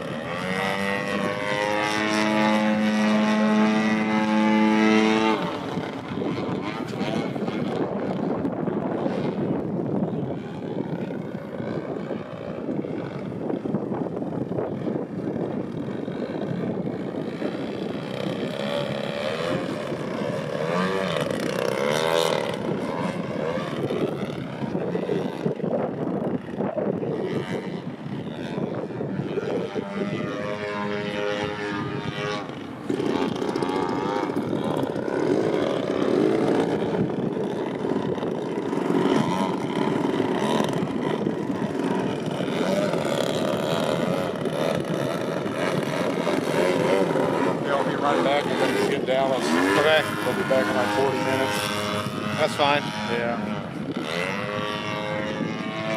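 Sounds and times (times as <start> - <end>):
model plane engine and propeller: 0.0 - 55.9.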